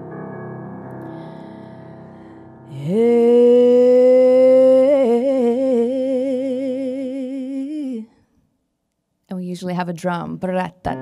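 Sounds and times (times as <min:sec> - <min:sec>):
piano chord: 0:00.0 - 0:04.2.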